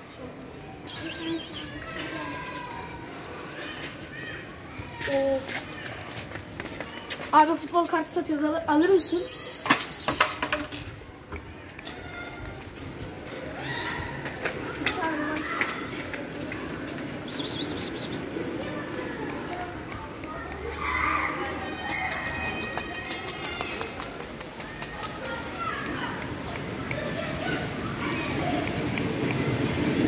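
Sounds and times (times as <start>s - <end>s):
children talking and calling: 0.0s - 30.0s
scattered clicks: 17.3s - 27.4s, 28.3s - 29.8s.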